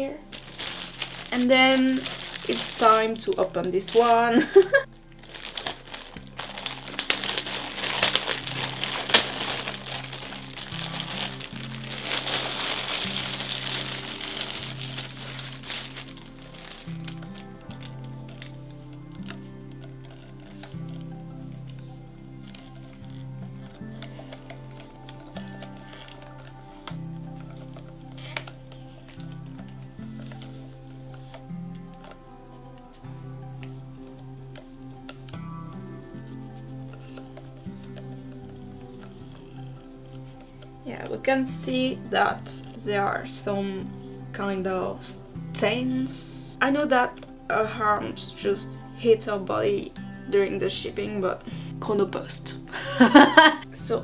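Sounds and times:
plastic wrapping crinkling: 0.0s - 49.8s, 50.4s - 54.0s
background music: 0.0s - 54.0s.

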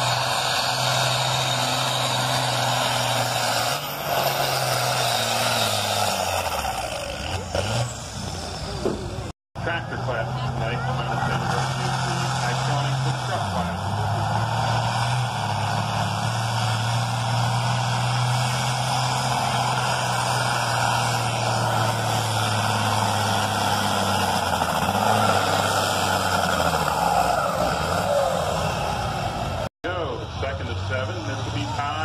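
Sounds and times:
diesel tractor engine under load: 0.0s - 32.0s.

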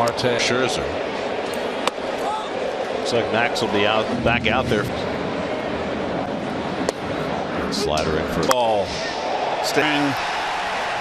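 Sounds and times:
ballpark crowd noise: 0.0s - 11.0s.

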